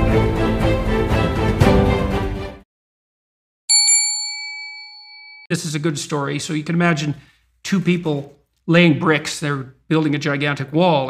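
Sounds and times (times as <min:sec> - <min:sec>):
notification bell ding: 0:03.7 - 0:05.5.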